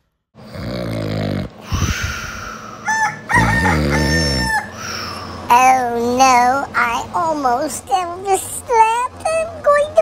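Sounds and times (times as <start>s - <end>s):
rooster crowing: 2.6s - 5.1s.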